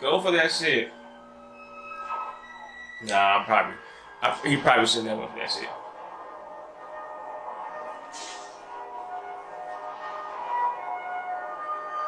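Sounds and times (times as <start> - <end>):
quiet film score of held tones: 0.0 - 12.0.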